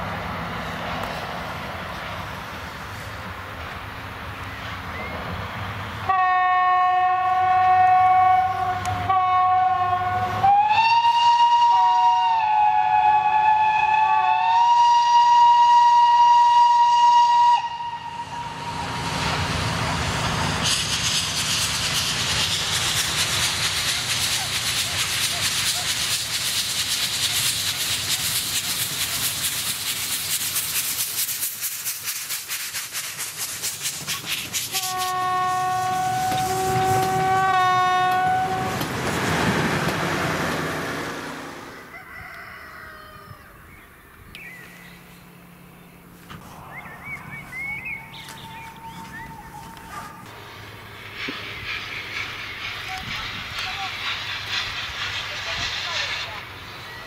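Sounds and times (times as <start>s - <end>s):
steam locomotive hissing and chuffing: 0.0s - 43.5s, 44.7s - 57.0s
steam locomotive whistle: 6.0s - 19.4s, 34.7s - 38.9s, 47.7s - 50.3s.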